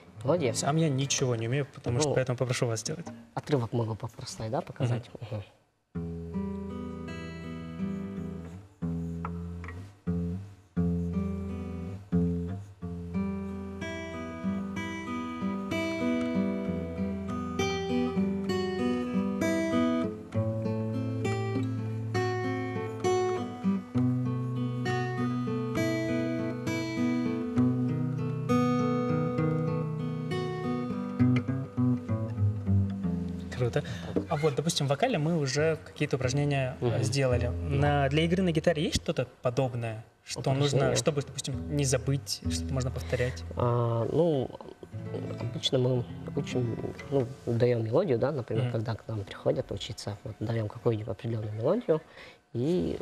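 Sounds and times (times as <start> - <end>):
acoustic guitar playing: 0.0 - 3.8, 5.9 - 38.8, 40.5 - 50.6.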